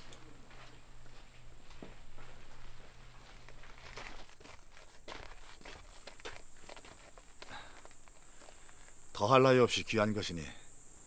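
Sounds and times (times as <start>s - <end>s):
footsteps on dirt: 0.0s - 9.1s.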